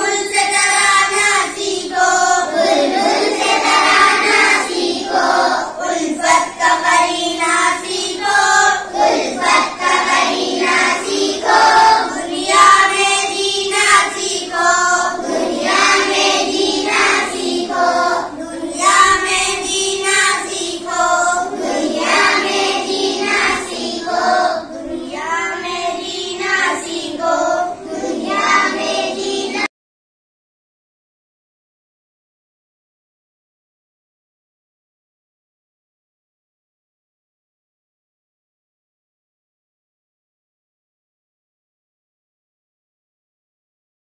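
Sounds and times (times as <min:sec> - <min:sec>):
boys singing in unison: 0:00.0 - 0:29.7.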